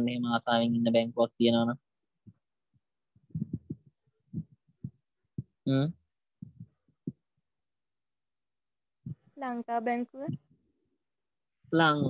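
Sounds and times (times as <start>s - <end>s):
soft low thumps: 3.3s - 7.3s.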